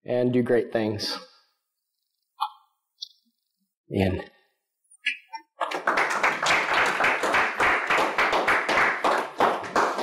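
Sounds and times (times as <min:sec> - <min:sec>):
audience applause: 0:05.6 - 0:10.0.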